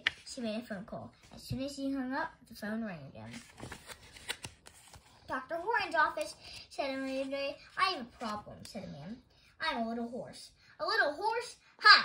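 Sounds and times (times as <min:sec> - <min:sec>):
book pages turning: 0:00.0 - 0:00.4, 0:03.2 - 0:08.9.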